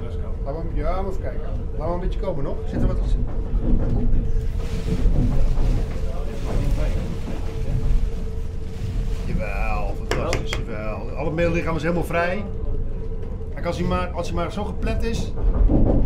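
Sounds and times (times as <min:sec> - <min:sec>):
man's voice: 0:09.3 - 0:12.5.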